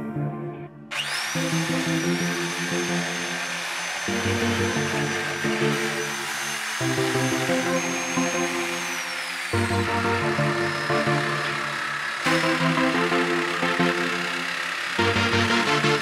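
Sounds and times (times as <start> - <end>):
background music: 0.0 - 16.0
electric jigsaw sawing wood: 0.9 - 16.0.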